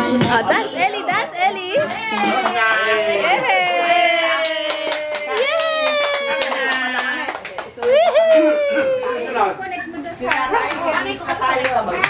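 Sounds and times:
hand claps: 4.4 - 8.4.

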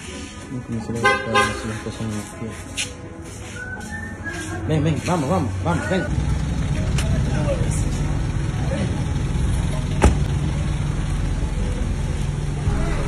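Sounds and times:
car engine idling: 6.1 - 13.0.

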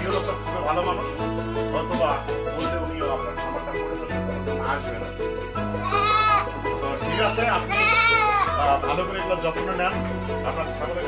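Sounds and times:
background music with bass line: 0.0 - 11.0.

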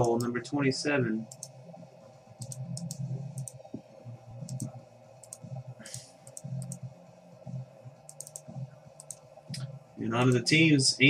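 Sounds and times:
low steady hum: 0.0 - 11.0
computer mouse buttons clicking: 1.3 - 1.6, 2.4 - 6.9, 8.0 - 10.4.

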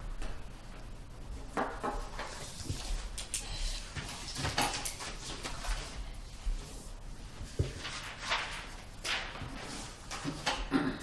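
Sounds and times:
paper rustling: 2.1 - 10.7.

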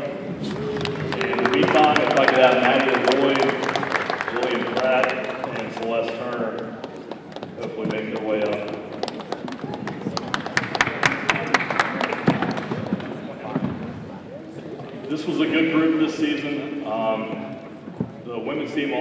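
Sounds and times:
audience clapping: 0.4 - 13.4.

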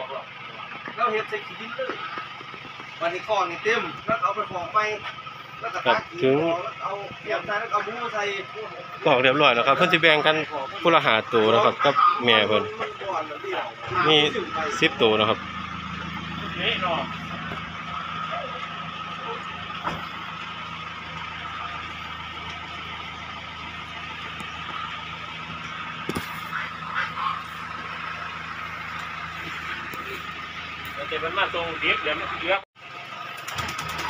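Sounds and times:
vehicle engine idling: 0.0 - 34.0.

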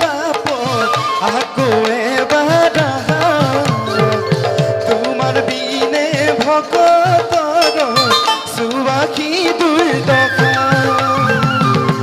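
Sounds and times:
man singing devotional song: 0.0 - 11.4.

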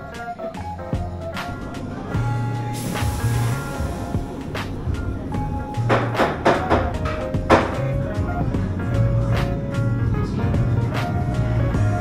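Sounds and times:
mellow music with light beat: 0.0 - 12.0.

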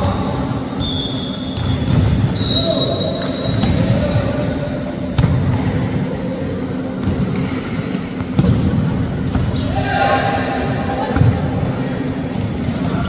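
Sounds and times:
sports hall din: 0.0 - 13.0.

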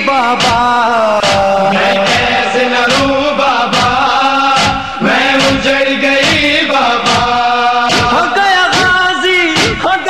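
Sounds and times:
men chanting a lament: 0.0 - 10.0
regular beat: 0.0 - 10.0.

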